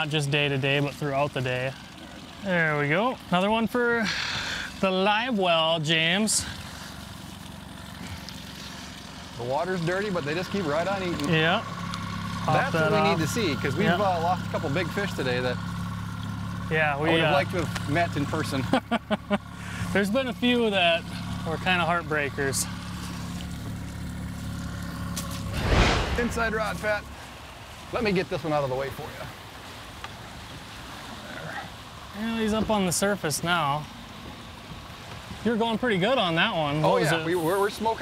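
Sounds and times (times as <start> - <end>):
outboard motor running: 0.0 - 25.6, 26.2 - 38.0.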